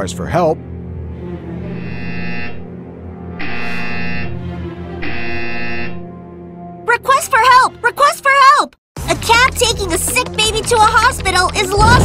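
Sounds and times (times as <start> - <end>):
background music: 0.0 - 12.0
electronic alarm buzzer: 1.7 - 2.7, 3.4 - 6.1.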